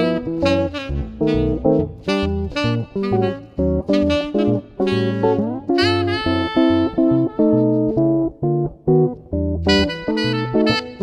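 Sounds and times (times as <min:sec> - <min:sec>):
tenor saxophone: 0:00.0 - 0:08.3, 0:09.5 - 0:11.0
archtop guitar with bass notes: 0:00.0 - 0:11.0.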